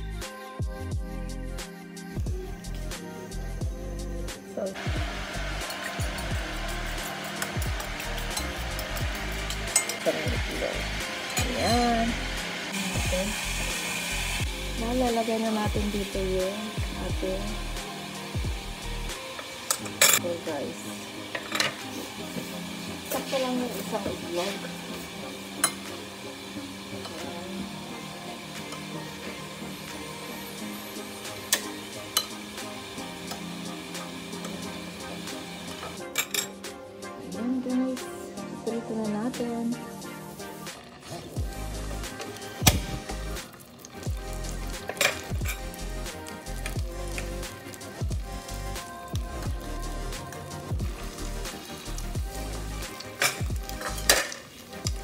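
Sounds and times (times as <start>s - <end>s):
background music with deep bass: 0.0s - 55.0s
fork beating eggs in a bowl: 5.6s - 10.6s.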